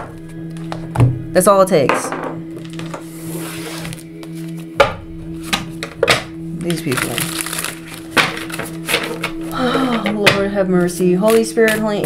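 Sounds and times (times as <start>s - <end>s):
soft background music: 0.0s - 12.0s
cards rustling: 6.6s - 9.5s.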